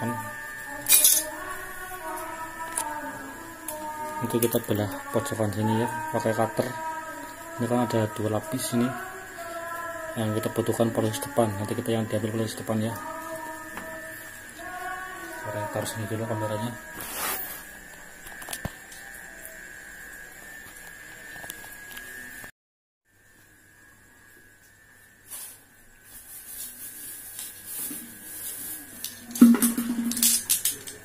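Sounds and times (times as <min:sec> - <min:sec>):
faint electrical hum: 0:00.0 - 0:22.5.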